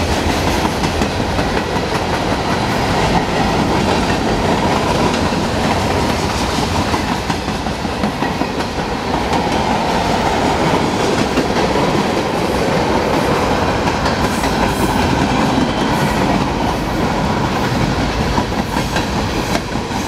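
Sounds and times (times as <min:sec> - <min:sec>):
train wheels clattering on rails: 0:00.0 - 0:20.0.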